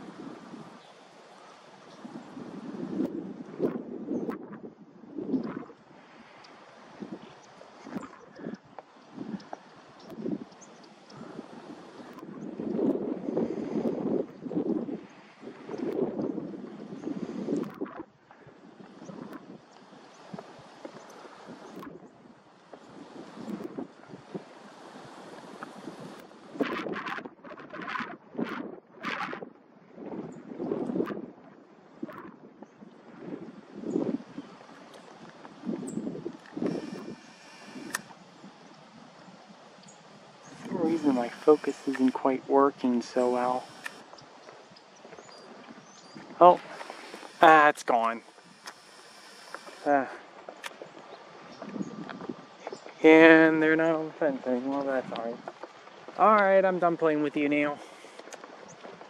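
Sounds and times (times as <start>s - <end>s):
wind buffeting microphone: 0.0s - 59.0s
sharp clicks: 36.4s - 38.2s, 40.6s - 42.2s, 43.1s - 44.1s, 46.5s - 49.9s.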